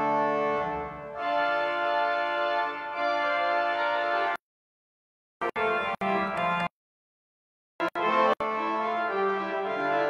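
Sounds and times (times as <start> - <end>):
pipe organ chords: 0.0 - 4.4, 5.4 - 6.7, 7.8 - 10.0.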